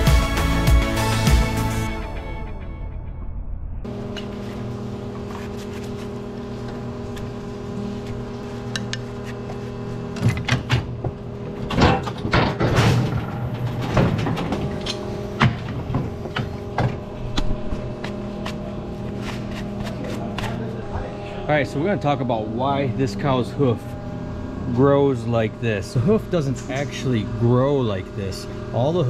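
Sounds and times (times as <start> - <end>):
hydraulic pump humming: 3.9 - 29.0
metal clanks and knocks: 10.2 - 17.1.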